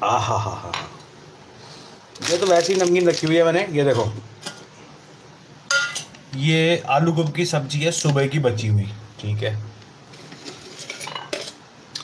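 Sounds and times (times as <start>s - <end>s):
metal bowls and utensils clinking: 5.7s - 6.2s, 10.1s - 12.0s.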